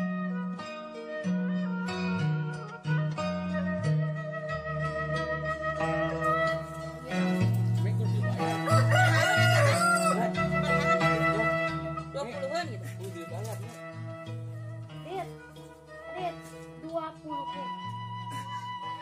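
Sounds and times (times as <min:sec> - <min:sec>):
flute melody: 0:00.0 - 0:19.0
steady bass line: 0:04.6 - 0:15.3
rooster crowing: 0:08.6 - 0:11.4.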